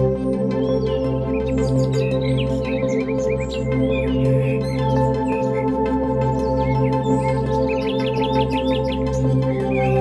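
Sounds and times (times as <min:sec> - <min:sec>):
birdsong chirping: 0:00.3 - 0:10.0.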